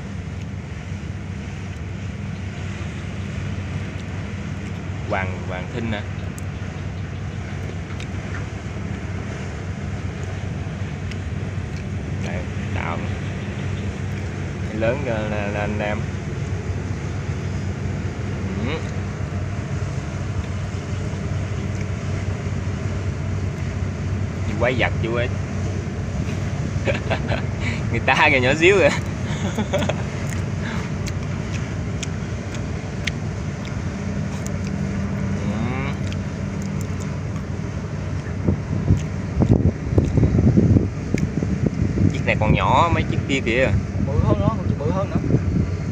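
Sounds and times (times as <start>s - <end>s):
ship engine low drone: 0.0s - 45.9s
wind on microphone: 15.8s - 29.3s, 36.8s - 45.9s.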